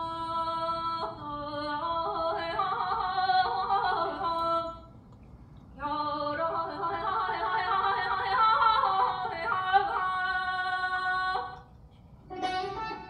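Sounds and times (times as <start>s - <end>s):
woman singing: 0.0s - 4.9s, 5.8s - 11.7s, 12.3s - 13.0s
plucked string instrument: 12.3s - 13.0s.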